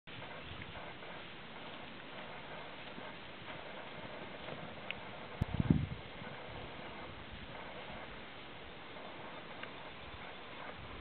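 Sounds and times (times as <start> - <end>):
hoofbeats on grass: 0.1 - 11.0
steady background hiss: 0.1 - 11.0.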